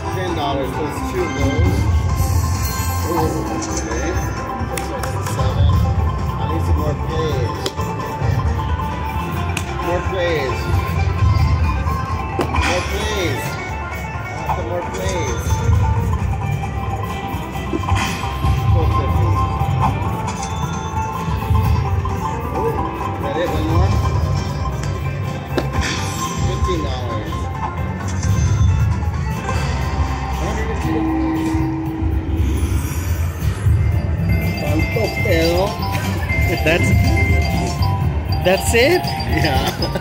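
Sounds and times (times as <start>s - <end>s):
slot machine music and effects: 0.0s - 40.0s
low rumbling bass: 27.8s - 40.0s.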